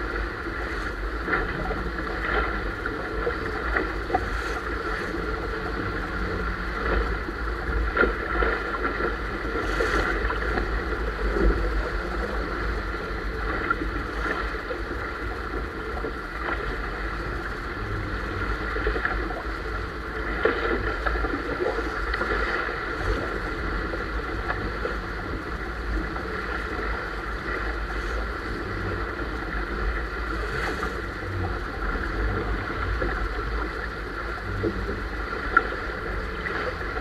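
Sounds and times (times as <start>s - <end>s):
deep steady rumble: 0.0s - 37.0s
water and wind rushing: 0.0s - 37.0s
water slapping hull: 0.0s - 37.0s.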